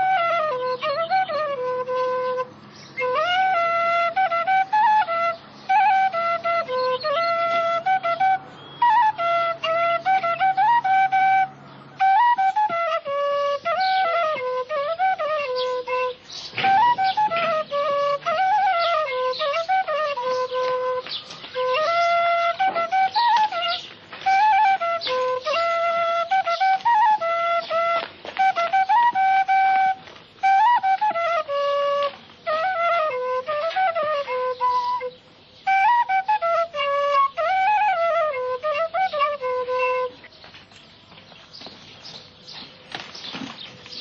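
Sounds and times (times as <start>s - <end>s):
solo flute melody: 0.0s - 41.0s.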